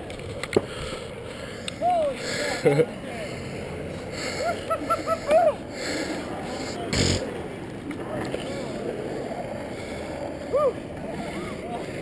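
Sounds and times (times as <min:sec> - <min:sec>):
longboard wheels rolling over asphalt: 0:00.0 - 0:12.0.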